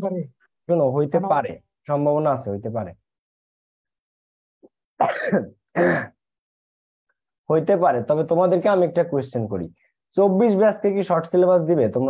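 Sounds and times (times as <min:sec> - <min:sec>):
man clearing his throat: 0:05.0 - 0:06.2.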